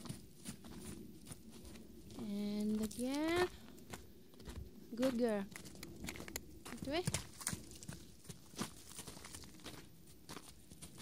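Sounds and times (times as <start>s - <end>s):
horse hooves on frozen ground: 0.0s - 11.0s.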